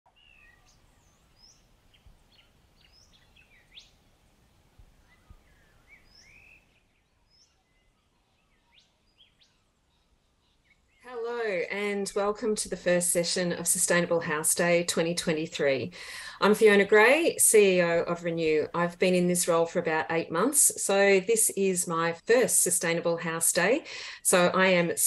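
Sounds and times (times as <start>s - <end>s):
faint birdsong chirps: 0.1s - 11.1s.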